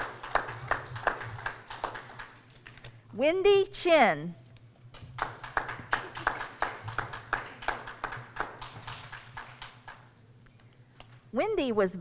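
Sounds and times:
sparse applause: 0.0s - 2.4s, 5.2s - 10.0s.

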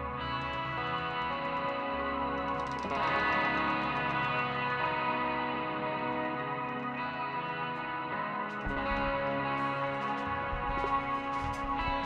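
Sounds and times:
electric guitar sustained notes: 0.0s - 12.0s
electric bass: 8.5s - 12.0s.

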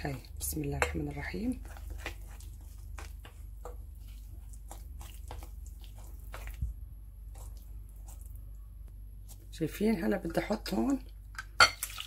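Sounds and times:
dough squelching: 0.0s - 12.0s.

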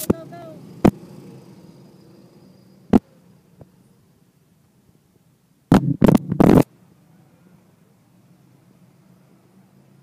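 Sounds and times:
distant go-kart engines droning: 0.0s - 4.8s, 6.4s - 10.0s
wind rumbling on microphone: 5.7s - 6.7s.

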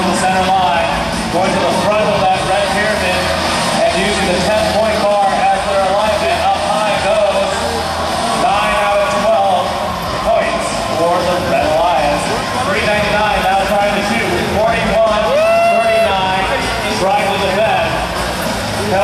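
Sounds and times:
arena crowd din: 0.0s - 19.0s.

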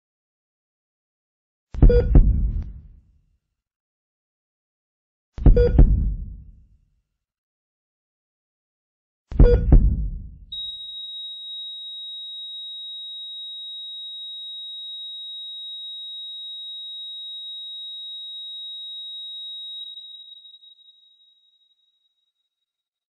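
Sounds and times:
loud boom rumble: 1.8s - 2.8s
high-pitched electronic tone: 10.6s - 22.3s.

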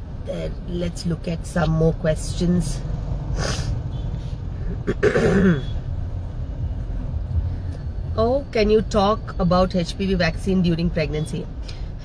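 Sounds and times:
woman clearing her throat: 4.8s - 5.7s.

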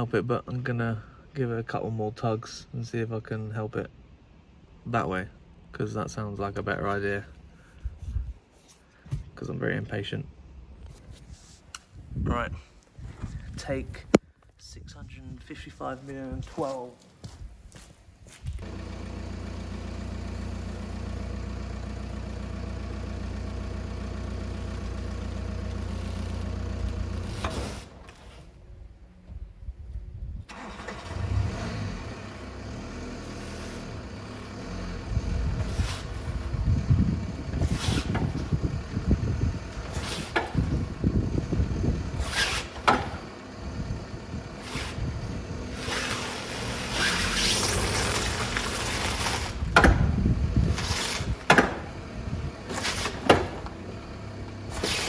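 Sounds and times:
van engine running: 18.5s - 29.6s, 30.5s - 55.0s
clunks and knocks: 49.6s - 50.2s, 51.3s - 51.9s, 52.7s - 53.8s.

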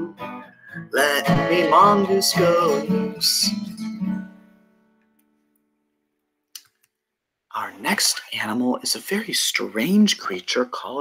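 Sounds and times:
acoustic guitar chord ringing: 0.0s - 5.1s.

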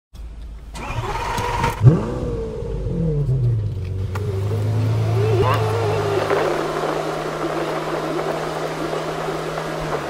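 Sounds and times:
car engine rumbling: 0.2s - 10.0s.

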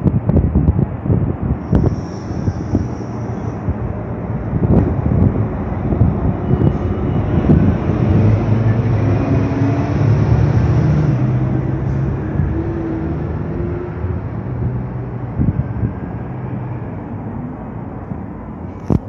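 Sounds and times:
street traffic rumble: 0.0s - 19.0s
vehicle engine hum: 0.0s - 19.0s.

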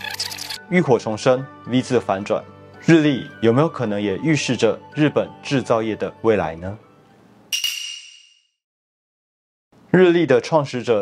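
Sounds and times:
metallic chime ping: 7.5s - 8.4s.

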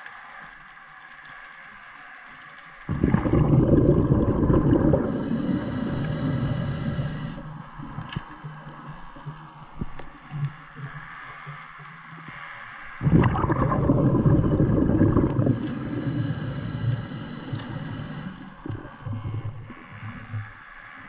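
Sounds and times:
underwater background: 0.0s - 21.0s
churning water and bubbles: 2.9s - 8.4s, 12.9s - 20.6s.

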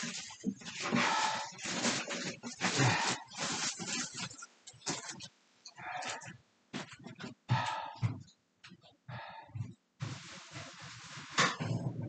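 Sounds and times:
man breathing heavily: 0.8s - 4.0s, 5.8s - 6.4s, 7.4s - 8.3s, 9.0s - 9.8s.

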